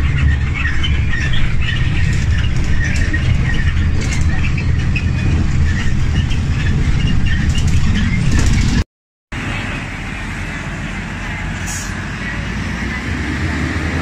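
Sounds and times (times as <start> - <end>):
bus engine and road noise inside: 0.0 - 14.0
buses going by: 0.0 - 14.0
roadside traffic: 0.0 - 14.0.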